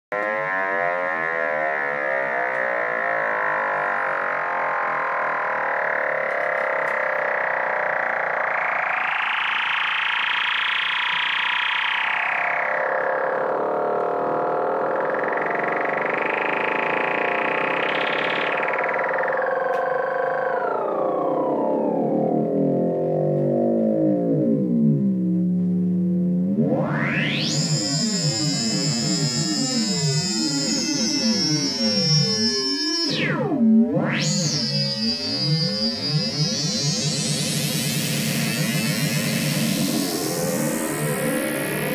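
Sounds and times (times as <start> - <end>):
synthesizer droning note: 0.1 - 41.9.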